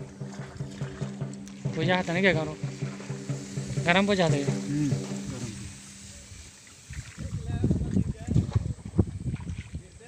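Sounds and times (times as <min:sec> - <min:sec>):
low rumbling and knocking: 0:00.0 - 0:05.8
plants brushing against hull: 0:00.0 - 0:10.0
water sloshing: 0:00.0 - 0:10.0.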